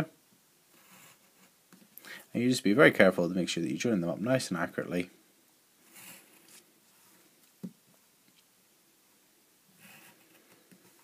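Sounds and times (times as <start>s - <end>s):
pencil scratching on paper: 0.7s - 1.6s, 5.9s - 6.6s, 9.8s - 11.0s.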